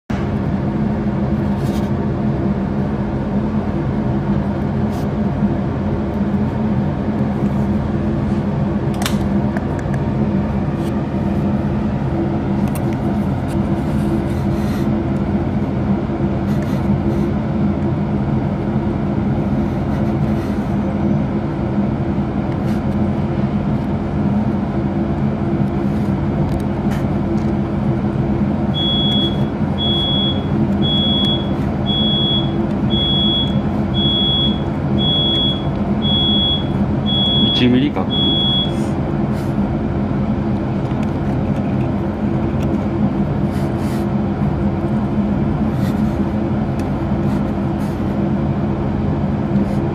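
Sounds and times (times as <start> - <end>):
machine hum: 0.1 - 49.9.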